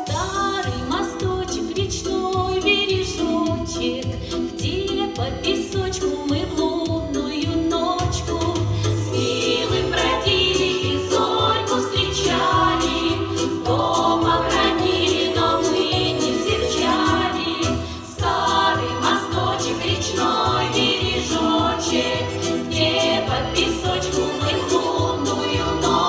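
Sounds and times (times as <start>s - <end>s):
instrumental accompaniment with beat: 0.0s - 26.0s
women singing in chorus: 0.0s - 26.0s.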